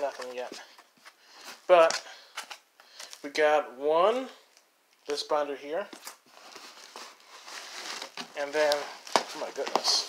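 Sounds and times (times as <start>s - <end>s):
rustling and scraping in cardboard box: 6.3s - 10.0s.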